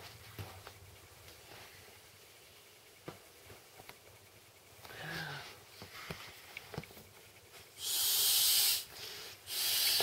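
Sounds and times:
breath blown into air mat valve: 7.8 - 10.0.

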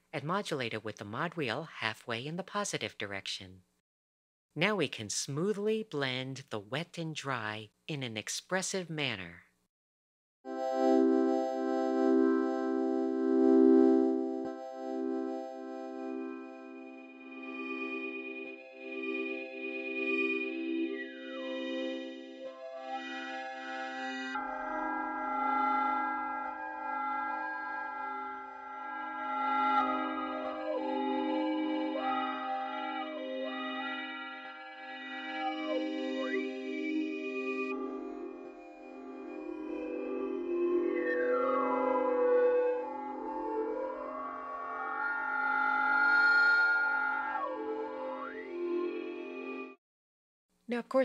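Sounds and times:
synthesizer sustained chords: 10.5 - 49.8.

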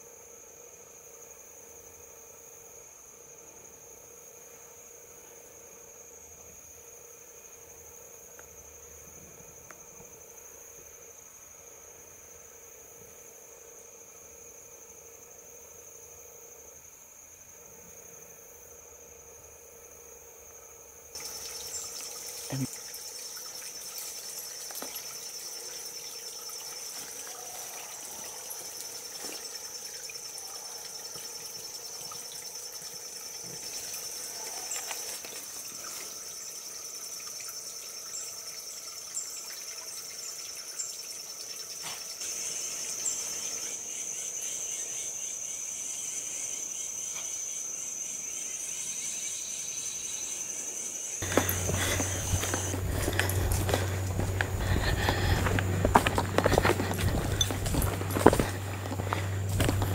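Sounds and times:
insect chorus drone: 0.0 - 59.9.

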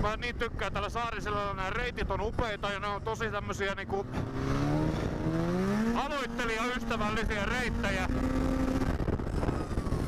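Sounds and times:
snowmobile engine running: 3.9 - 10.0.

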